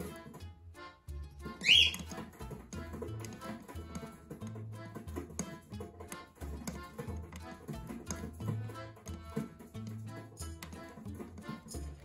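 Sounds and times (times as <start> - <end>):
background music with bass: 0.0 - 12.0
cockatiel call: 1.6 - 2.1.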